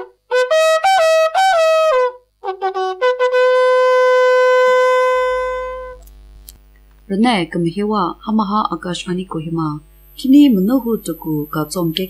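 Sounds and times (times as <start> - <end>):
long held brass note: 0.0 - 6.0
trumpet-like notes: 0.0 - 6.0
low mains hum: 3.6 - 12.0.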